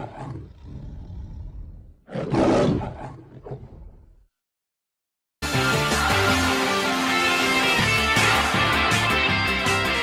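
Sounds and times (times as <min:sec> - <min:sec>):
lion roaring: 0:00.0 - 0:04.1.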